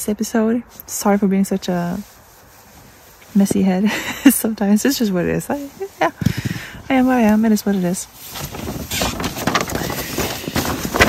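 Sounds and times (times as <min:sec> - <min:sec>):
rustling and crackling handling noise: 0:00.6 - 0:11.0.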